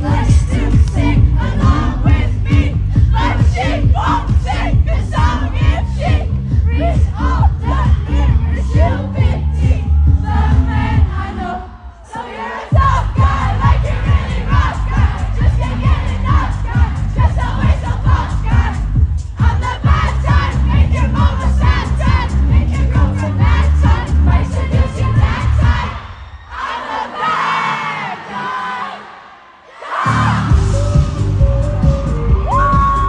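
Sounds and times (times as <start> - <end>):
heavy bass beat: 0.0 - 11.4, 12.7 - 26.0, 30.1 - 33.0
crowd shouting and singing: 0.0 - 33.0.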